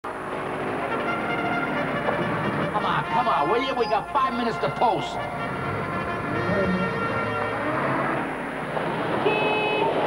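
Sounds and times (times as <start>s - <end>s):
brass instruments holding notes: 0.9s - 8.4s.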